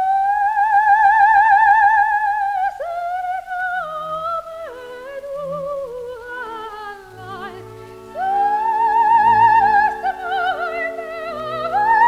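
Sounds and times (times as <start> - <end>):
soprano singing with vibrato: 0.0 - 12.0.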